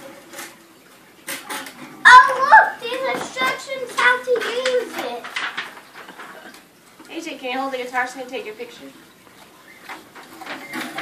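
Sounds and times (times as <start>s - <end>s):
girl's excited voice: 2.0s - 5.3s
rustling of boxes and gift wrap: 2.8s - 6.6s.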